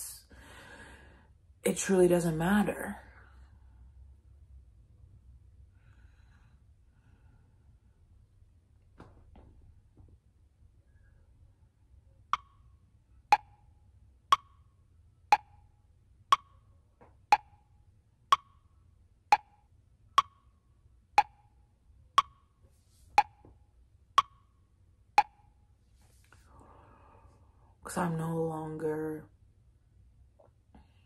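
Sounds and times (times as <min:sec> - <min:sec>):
clock ticking: 0:12.3 - 0:12.7, 0:13.3 - 0:14.7, 0:15.3 - 0:15.7, 0:16.3 - 0:16.7, 0:17.3 - 0:17.7, 0:18.3 - 0:18.7, 0:19.3 - 0:20.6, 0:21.2 - 0:21.6, 0:22.2 - 0:22.6, 0:23.2 - 0:23.5, 0:24.2 - 0:24.6, 0:25.2 - 0:25.6.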